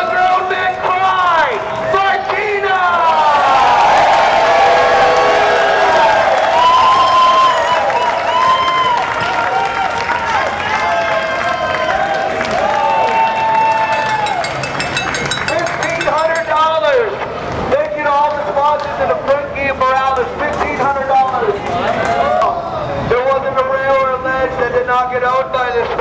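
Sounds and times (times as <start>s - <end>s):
man shouting through megaphone: 0.0s - 3.4s
crowd noise: 0.0s - 26.0s.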